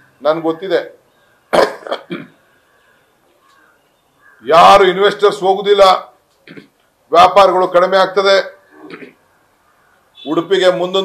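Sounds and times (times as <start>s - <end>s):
man coughing: 1.5s - 2.4s, 8.8s - 9.2s.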